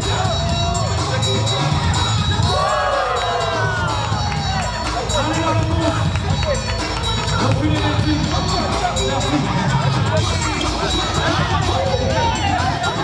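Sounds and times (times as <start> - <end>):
crowd shouting and cheering: 0.0 - 13.0
music with steady bass beat: 0.0 - 13.0.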